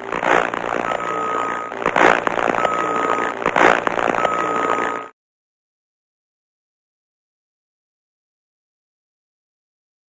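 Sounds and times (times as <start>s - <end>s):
crackling hissy noise: 0.0s - 5.1s.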